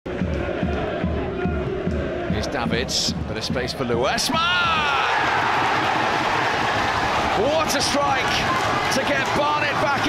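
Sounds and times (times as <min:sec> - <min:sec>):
low repeating beat: 0:00.1 - 0:07.5
stadium crowd noise: 0:00.1 - 0:10.0.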